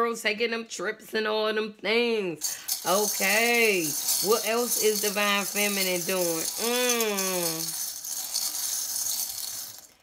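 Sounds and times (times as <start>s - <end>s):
metal charms jingling in a bowl: 2.4s - 10.0s.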